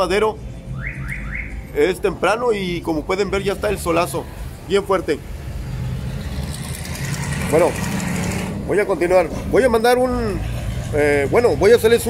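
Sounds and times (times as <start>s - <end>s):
car engines rumbling: 0.0s - 12.0s.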